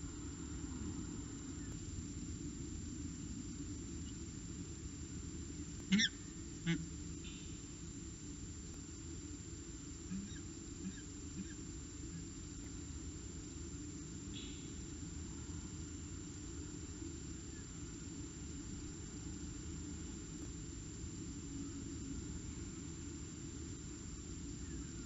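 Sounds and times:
low rumble of background noise: 0.0 - 25.0.

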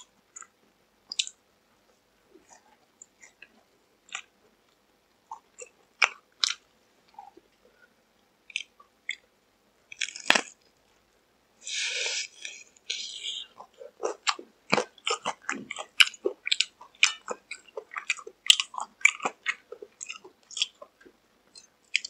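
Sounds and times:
crunchy bite of fried chicken: 9.9 - 10.6
crisp chewing crackles: 9.9 - 11.0, 11.6 - 22.0.

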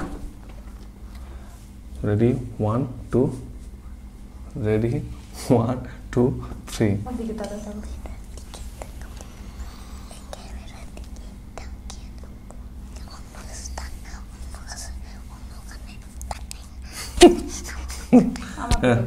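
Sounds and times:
steady low hum: 0.0 - 19.0
child whispering: 7.3 - 18.6.

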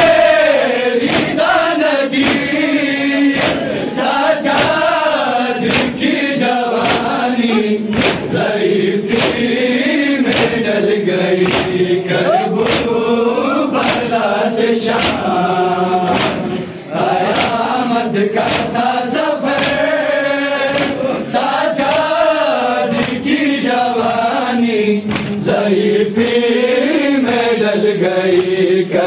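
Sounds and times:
men chanting together: 0.0 - 29.0
hands slapping on chests: 1.0 - 1.5, 2.1 - 2.6, 3.3 - 3.8, 4.4 - 5.0, 5.6 - 6.1, 6.7 - 7.2, 7.9 - 8.4, 9.1 - 9.5, 10.2 - 10.7, 11.4 - 11.9, 12.6 - 13.0, 13.8 - 14.2, 14.9 - 15.3, 16.0 - 16.6, 17.2 - 17.8, 18.4 - 18.8, 19.5 - 20.0, 20.7 - 21.1, 21.8 - 22.2, 22.9 - 23.4, 25.1 - 25.6, 26.2 - 26.5, 27.2 - 27.5, 28.3 - 28.7.

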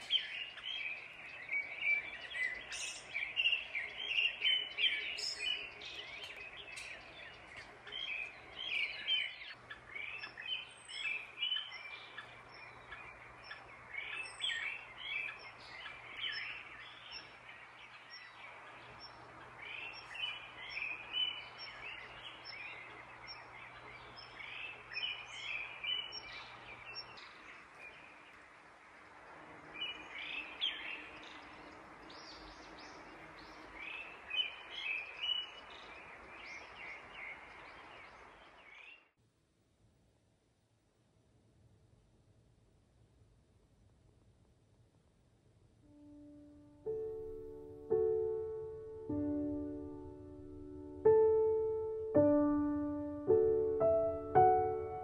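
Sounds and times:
songbirds chirping and trilling: 0.0 - 39.2, 45.8 - 55.0.

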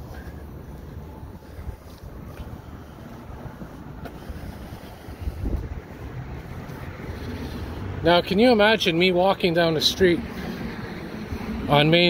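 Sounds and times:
wind buffeting microphone: 0.4 - 8.1.

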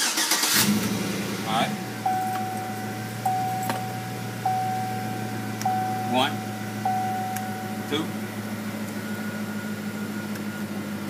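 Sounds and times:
engine idling hum: 0.0 - 11.0
warning chime tone: 1.7 - 8.4.

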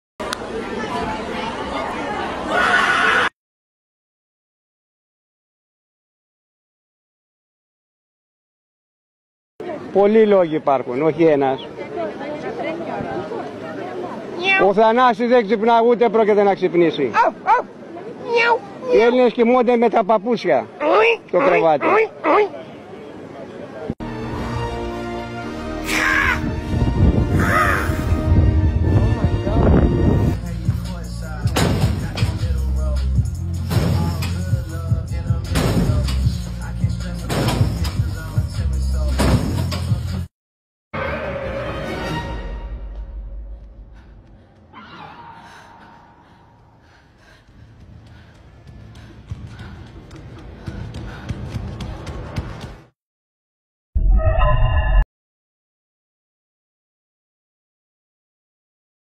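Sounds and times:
indoor chatter of voices: 0.2 - 2.9, 11.2 - 14.7
man making harsh bird-like calls: 20.8 - 22.6, 27.4 - 28.0
high-pitched shout or cheer: 25.8 - 26.5
music with heavy low beat: 30.4 - 40.2.

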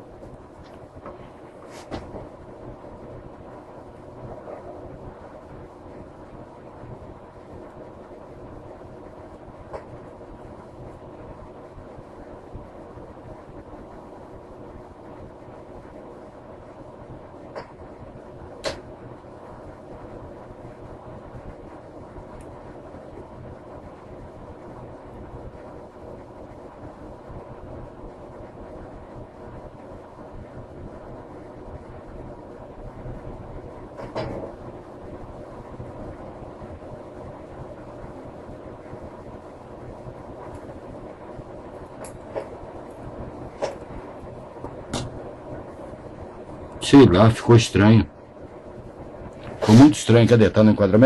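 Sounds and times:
background hum: 0.0 - 51.0.

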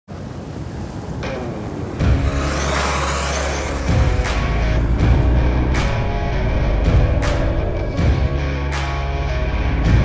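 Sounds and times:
motorcycle engine passing: 0.3 - 7.8
steady low rumble: 4.1 - 8.7.

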